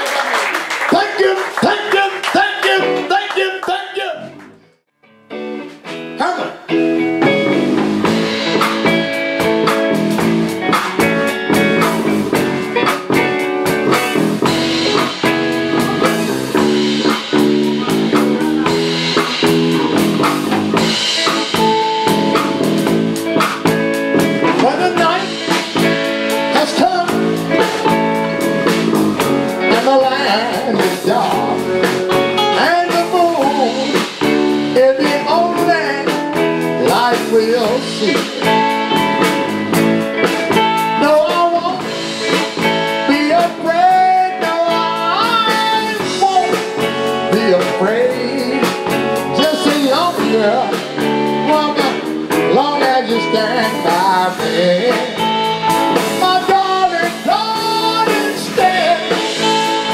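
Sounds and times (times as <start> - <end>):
electric blues band playing: 0.0 - 59.9.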